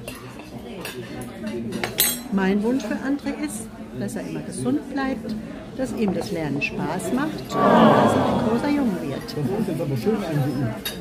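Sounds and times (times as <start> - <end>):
murmur of voices: 7.5 - 9.2.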